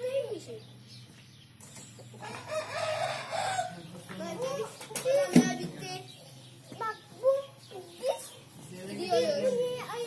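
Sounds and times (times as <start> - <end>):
rooster crowing: 2.2 - 3.8.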